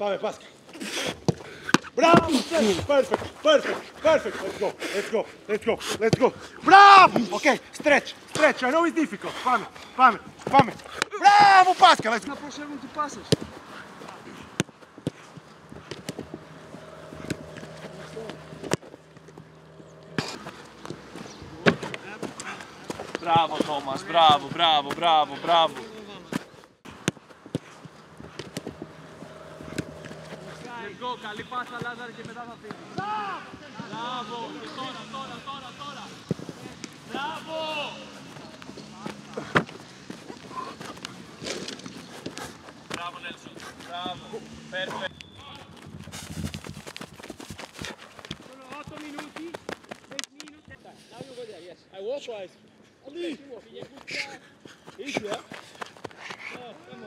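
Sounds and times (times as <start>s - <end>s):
footballs being kicked: 13.2s - 34.1s, 38.2s - 50.2s
steady low hum: 13.5s - 23.3s, 26.8s - 31.6s.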